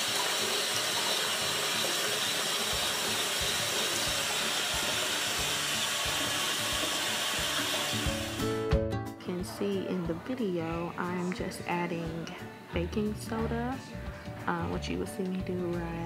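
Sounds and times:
faucet running into sink: 0.0s - 8.5s.

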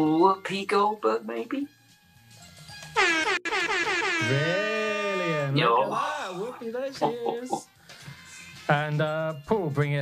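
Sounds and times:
faint background music: 0.0s - 10.0s
air horn blast: 3.0s - 4.8s.

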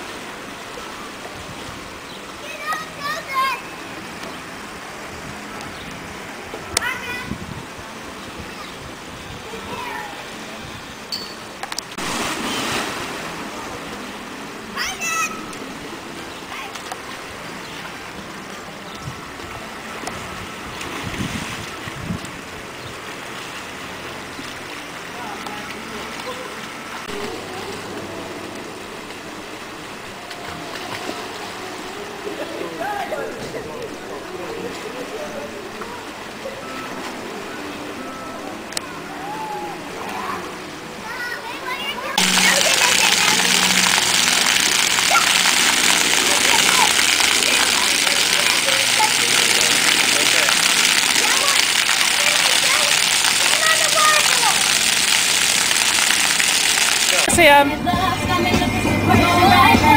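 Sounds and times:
water splashing into pool: 11.5s - 31.9s, 42.1s - 57.3s
water rushing down slide: 11.9s - 14.1s, 39.2s - 59.9s.

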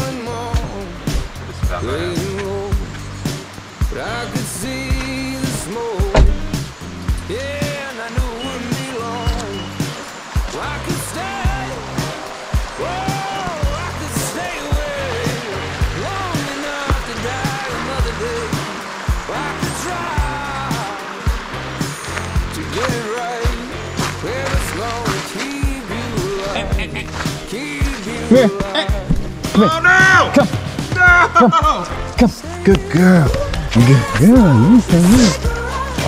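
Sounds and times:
song with beat bass and vocals: 0.0s - 36.0s.

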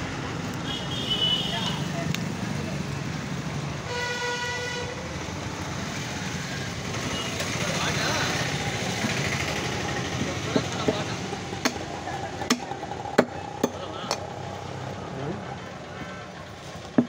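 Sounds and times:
road traffic: 0.0s - 17.0s
vehicle horn toot: 0.6s - 1.9s, 3.9s - 4.9s, 7.0s - 7.5s
cleaver chopping on wood: 12.4s - 14.2s.

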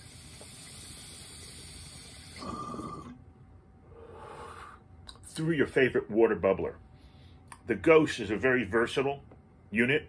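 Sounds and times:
airy hiss of bong inhale: 0.0s - 3.1s, 3.9s - 4.8s.

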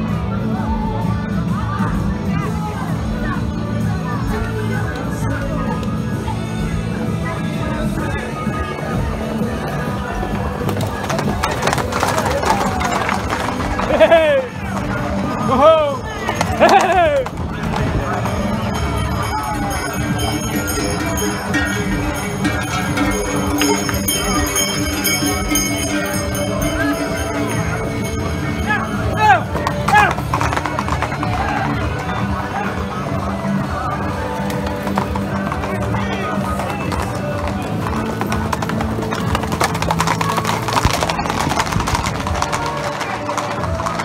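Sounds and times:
crowd din: 0.0s - 44.0s
music: 0.0s - 44.0s
horse hooves on sand: 9.2s - 44.0s.

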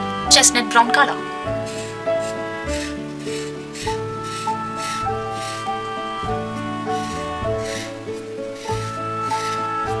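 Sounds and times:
background music with bass: 0.0s - 10.0s
marker rubbing on paper: 1.5s - 10.0s.

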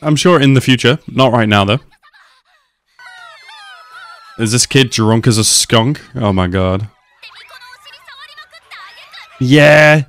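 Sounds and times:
high wavering wailing voice: 3.0s - 4.5s.

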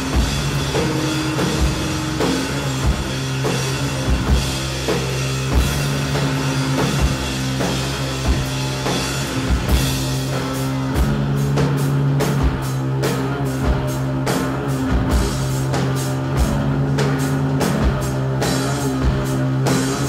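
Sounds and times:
distorted electric guitar: 0.0s - 20.0s
heavy drum hits: 0.0s - 20.0s.

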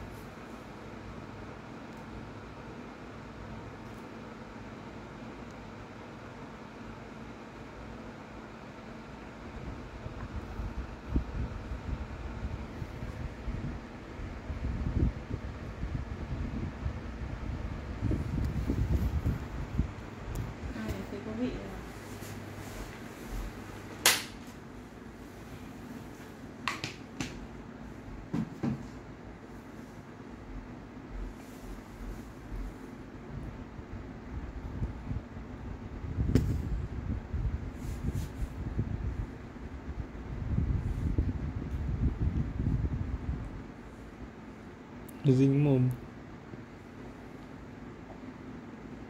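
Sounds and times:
fan-like hiss: 0.0s - 49.0s
low steady hum: 0.0s - 49.0s.

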